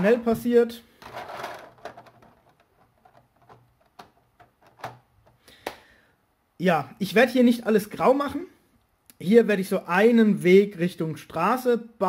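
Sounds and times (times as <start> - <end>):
plastic bricks scraping: 0.9 - 5.0.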